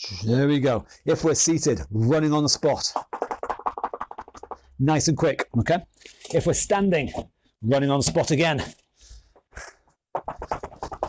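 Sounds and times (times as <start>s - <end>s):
feet tapping on rubber floor: 3.0s - 4.7s, 10.1s - 11.0s.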